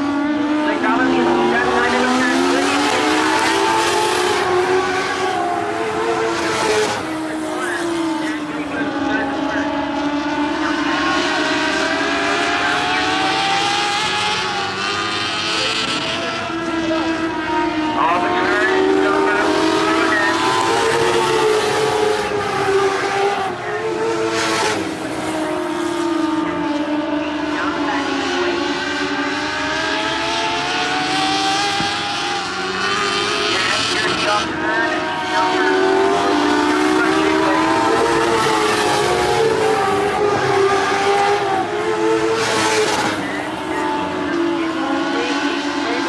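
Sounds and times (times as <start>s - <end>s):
race car engines: 0.0s - 46.0s.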